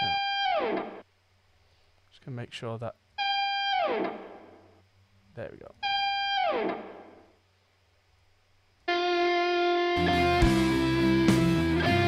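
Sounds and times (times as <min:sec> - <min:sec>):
distorted electric guitar note: 0:08.9 - 0:12.0.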